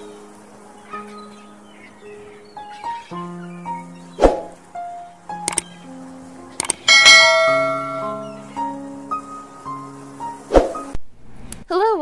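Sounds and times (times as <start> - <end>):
soft background music: 0.0 - 11.0
quick clicks: 5.4 - 5.7, 6.6 - 6.9
notification bell ding: 6.9 - 8.4.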